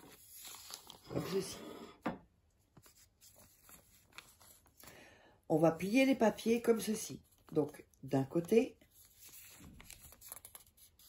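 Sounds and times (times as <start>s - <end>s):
paper rustling and crinkling: 0.0s - 1.6s, 2.6s - 5.0s, 8.4s - 11.0s.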